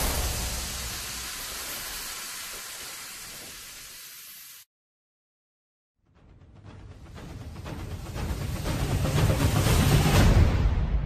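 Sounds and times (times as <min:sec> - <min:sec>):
loud hit: 0:00.0 - 0:01.6
hissing sound effect: 0:00.0 - 0:04.7.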